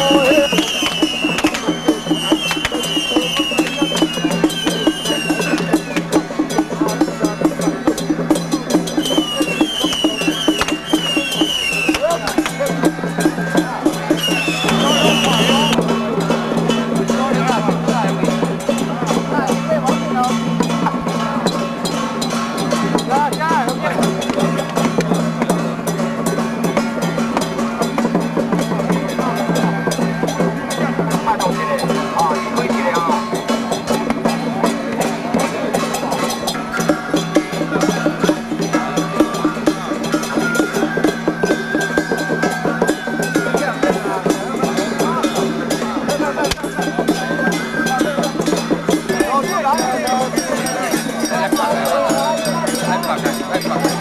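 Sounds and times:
high wind instrument melody: 0.0 - 6.6, 7.7 - 15.9
crowd voices: 0.0 - 54.0
rapid drum and gong percussion: 0.0 - 54.0.

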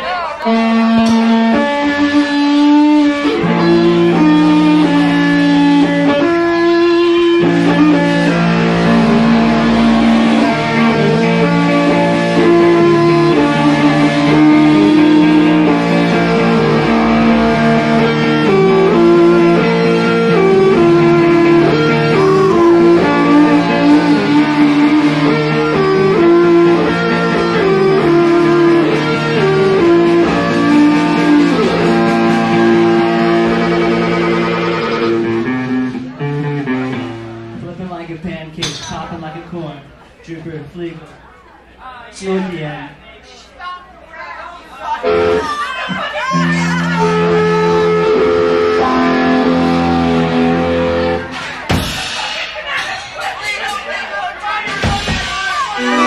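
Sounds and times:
electric guitar chords: 0.4 - 37.6, 45.0 - 51.4, 55.8 - 56.0
rock band playing live: 0.4 - 37.6
bass guitar: 0.4 - 37.8, 46.4 - 51.8.

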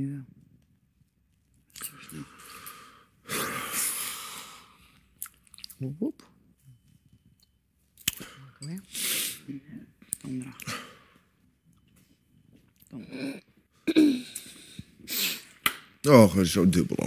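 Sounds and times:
man sniffing and breathing: 2.1 - 5.0, 8.3 - 9.5, 14.2 - 15.6.

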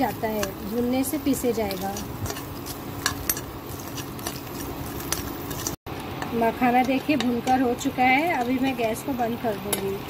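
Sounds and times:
spoon clinking and scraping pan: 0.3 - 5.8.

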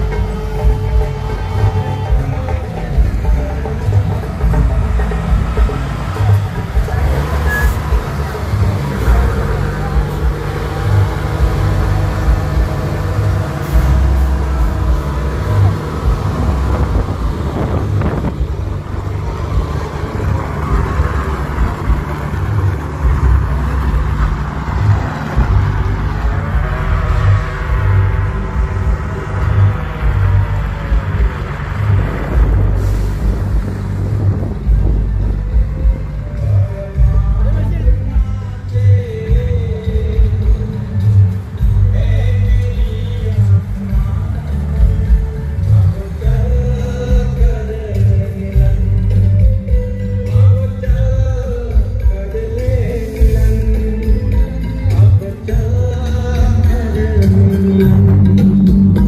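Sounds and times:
diesel truck engines revving: 0.0 - 59.0
music with heavy bass beat: 0.0 - 59.0.

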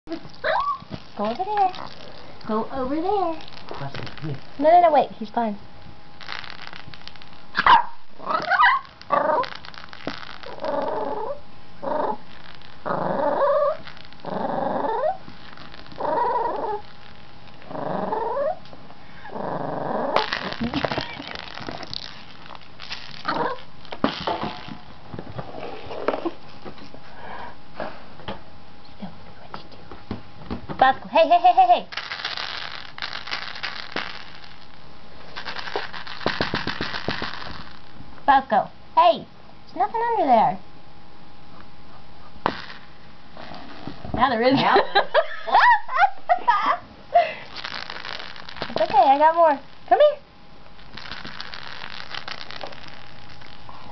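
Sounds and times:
rattle ball rattling: 0.1 - 5.2, 6.2 - 18.0, 20.2 - 25.0, 31.9 - 38.0, 42.4 - 44.3, 47.5 - 50.1, 50.8 - 53.9
small dog growling in play: 8.2 - 9.6, 10.4 - 12.2, 12.8 - 15.2, 15.9 - 16.8, 17.6 - 18.6, 19.2 - 21.0, 23.2 - 23.6.

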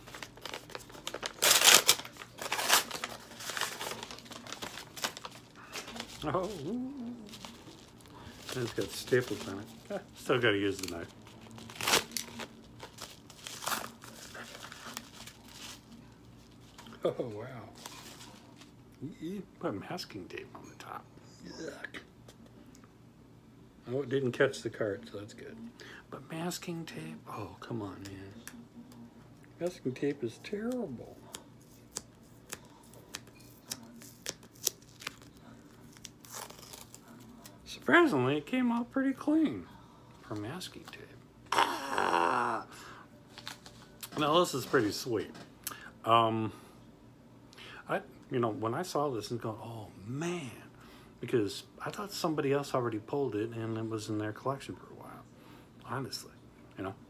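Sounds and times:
paper mailer crinkling and tearing: 0.0 - 16.0, 33.6 - 37.6
masking tape peeling off plastic: 35.9 - 37.0.

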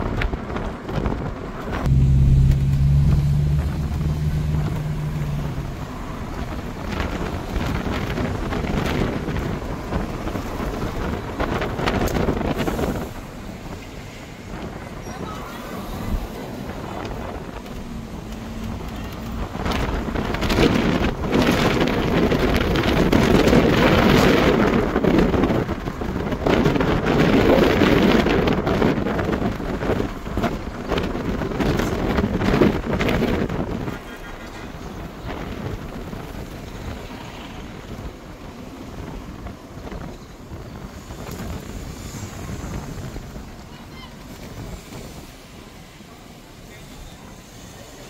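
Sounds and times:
wind rushing over microphone: 0.0 - 46.6
car road noise: 0.0 - 48.0.

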